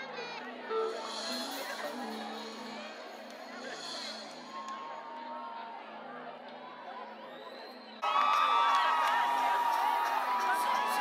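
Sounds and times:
crowd cheering and whooping: 0:08.0 - 0:11.0.

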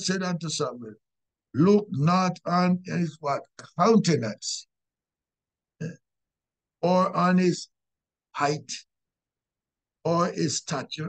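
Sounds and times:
man speaking: 0:00.0 - 0:00.9, 0:01.6 - 0:04.7, 0:06.8 - 0:07.7, 0:08.4 - 0:08.9, 0:10.1 - 0:11.0.

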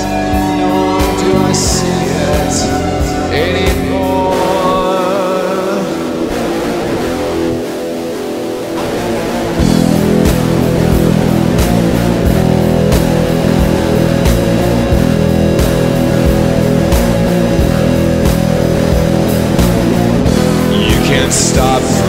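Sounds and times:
instrumental rock guitar music: 0:00.0 - 0:22.0
steady beat: 0:07.7 - 0:22.0.

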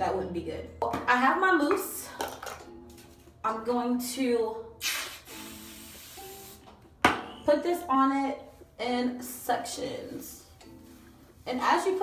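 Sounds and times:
aerosol can hissing: 0:04.8 - 0:06.7.

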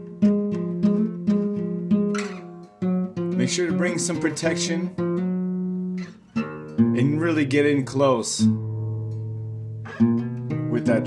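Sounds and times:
acoustic guitar strummed slowly: 0:00.0 - 0:11.0.

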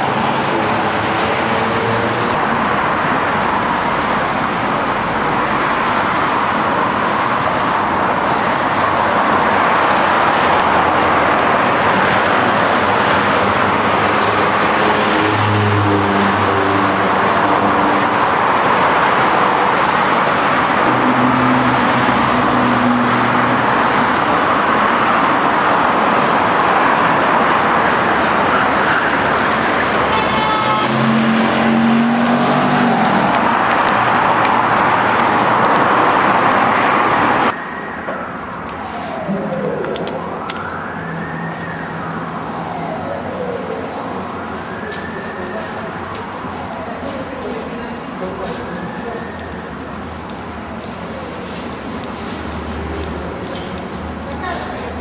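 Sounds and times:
heavy road traffic: 0:00.0 - 0:55.0
passing vehicle engines: 0:00.0 - 0:55.0.

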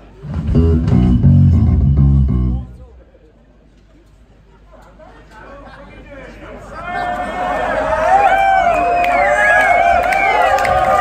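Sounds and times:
electric bass guitar notes: 0:00.0 - 0:03.1.

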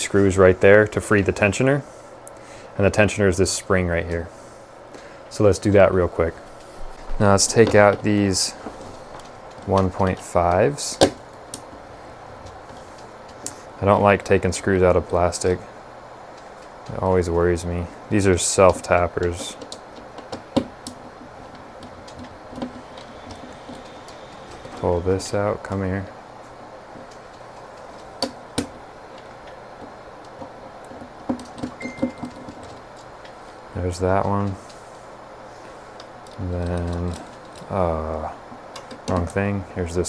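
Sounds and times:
low room noise: 0:00.0 - 0:40.0
small clicks and taps: 0:18.6 - 0:24.8, 0:38.5 - 0:39.4.

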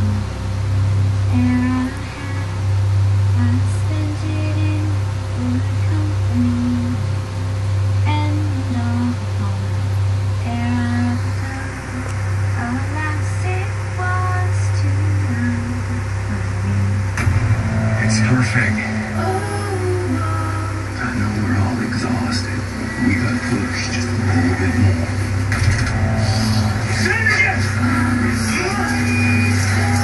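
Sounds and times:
slow melody over low drone: 0:00.0 - 0:30.0.

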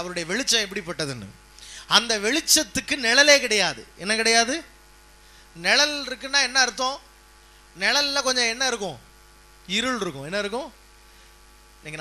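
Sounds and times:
man preaching: 0:00.0 - 0:01.3, 0:01.9 - 0:04.7, 0:05.6 - 0:07.1, 0:07.8 - 0:09.0, 0:09.7 - 0:10.8
electrical mains hum: 0:00.0 - 0:12.0.

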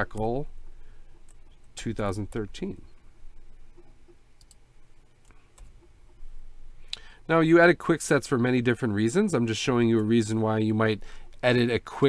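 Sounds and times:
faint computer input clicks: 0:03.8 - 0:04.6.

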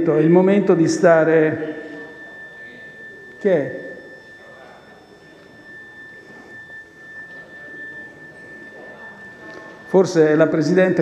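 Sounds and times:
high-pitched electronic tone: 0:00.0 - 0:11.0.

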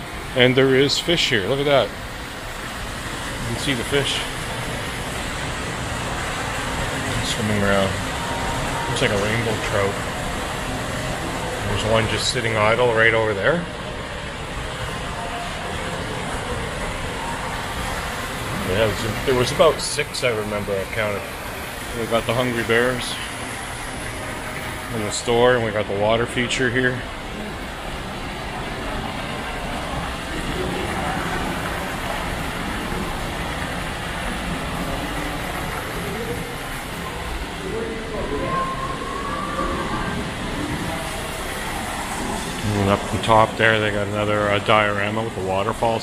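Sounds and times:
ventilation rushing: 0:00.0 - 0:46.0
water feature trickling: 0:00.0 - 0:46.0.

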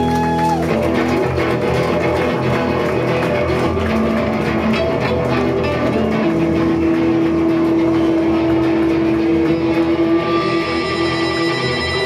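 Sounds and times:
bass guitar: 0:00.0 - 0:12.0
distorted electric guitars: 0:00.0 - 0:12.0
drums: 0:00.0 - 0:12.0.

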